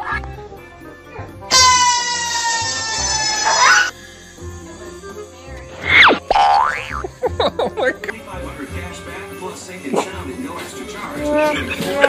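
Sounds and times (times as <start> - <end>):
background music with steady beat: 0.0 - 12.0
sinking cartoon tone: 1.5 - 3.9
springy boings: 1.5 - 3.9.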